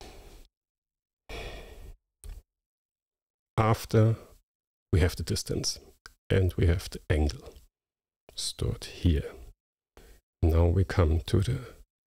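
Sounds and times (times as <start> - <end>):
man sighing breath: 1.3 - 2.0.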